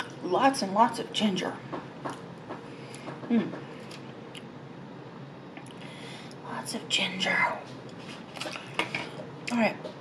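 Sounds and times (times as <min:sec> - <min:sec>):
person humming: 0:03.3 - 0:03.6.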